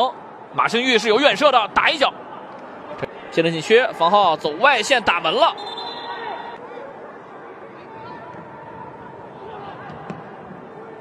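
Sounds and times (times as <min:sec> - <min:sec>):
shouts from pitch and stands: 0:05.3 - 0:06.6
murmur of distant voices: 0:05.6 - 0:11.0.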